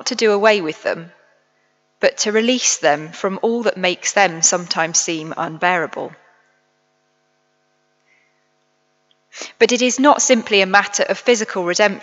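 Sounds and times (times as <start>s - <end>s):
woman speaking: 0.0s - 1.1s, 2.0s - 6.2s, 9.4s - 12.0s
faint mains hum: 0.0s - 12.0s.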